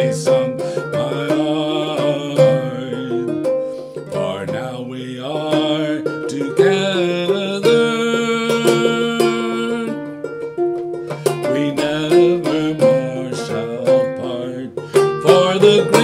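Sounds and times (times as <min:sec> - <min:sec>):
banjo plucked notes: 0:00.0 - 0:16.0.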